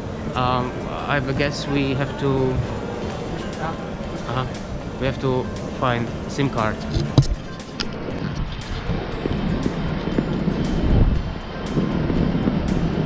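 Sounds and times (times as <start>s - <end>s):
low outdoor rumble: 0.0s - 13.0s
music with light beat: 0.0s - 13.0s.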